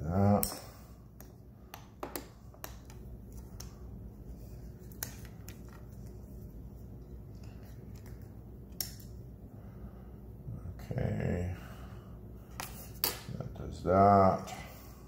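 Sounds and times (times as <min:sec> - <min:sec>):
faint room hum: 0:00.0 - 0:15.0.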